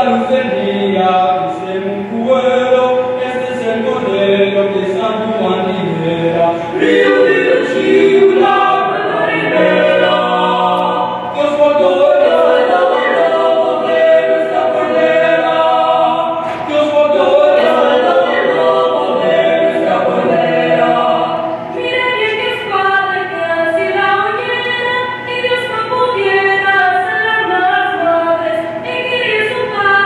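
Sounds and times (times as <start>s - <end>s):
vocal quartet singing a cappella: 0.0s - 30.0s.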